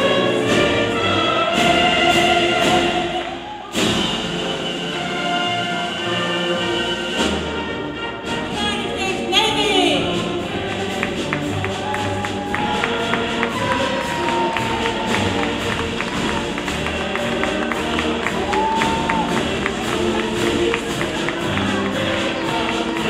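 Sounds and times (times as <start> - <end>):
choir singing held notes: 0.0 - 8.4, 9.5 - 23.0
orchestra playing: 0.0 - 23.0
tapping percussion beat: 9.4 - 23.0.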